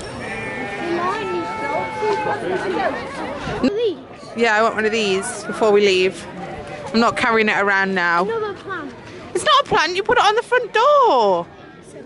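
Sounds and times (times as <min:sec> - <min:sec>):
people talking: 0:00.8 - 0:12.0.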